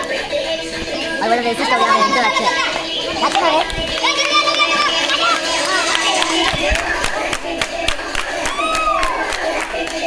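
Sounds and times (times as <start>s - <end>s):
people talking excitedly: 0.0s - 9.6s.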